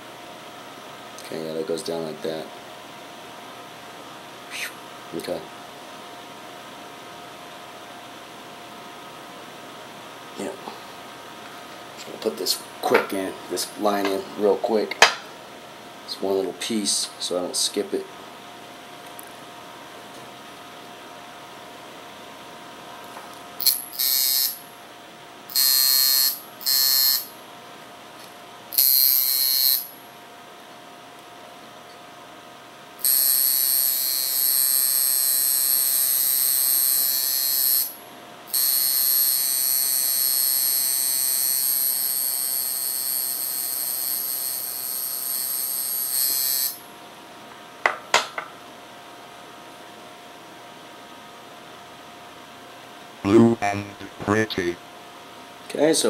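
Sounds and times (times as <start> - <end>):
tattoo machine buzzing: 23.6 - 24.7, 25.5 - 27.4, 28.7 - 30.0, 33.0 - 46.9.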